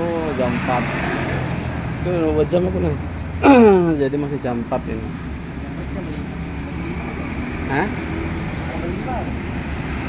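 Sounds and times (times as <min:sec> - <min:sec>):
passing vehicles rumble: 0:00.0 - 0:10.0
person speaking: 0:03.4 - 0:05.0.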